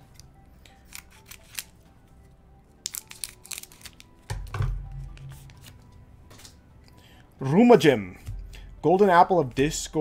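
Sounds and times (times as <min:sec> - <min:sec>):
trading cards and packaging clicking: 0:00.0 - 0:01.8, 0:02.7 - 0:07.0
faint background music: 0:00.0 - 0:10.0.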